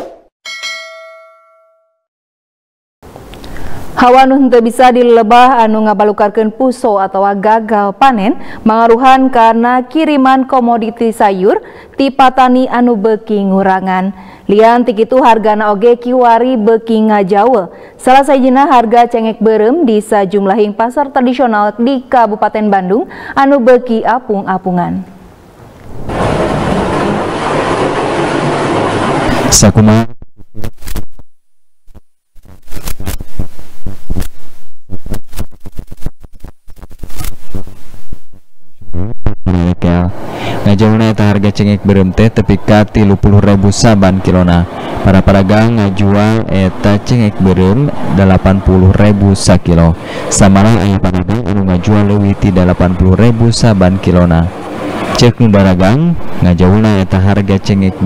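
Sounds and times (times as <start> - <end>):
notification bell ding: 0.5 - 2.0.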